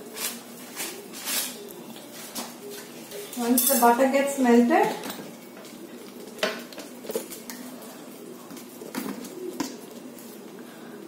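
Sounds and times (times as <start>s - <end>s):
bird cooing softly: 0.0s - 3.4s, 5.1s - 11.0s.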